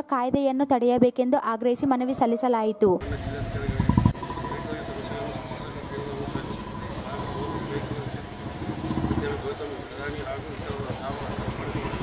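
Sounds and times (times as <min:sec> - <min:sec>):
faint voices: 0:02.8 - 0:12.0
loud low rumble: 0:03.0 - 0:12.0
vehicle engine running: 0:03.0 - 0:12.0.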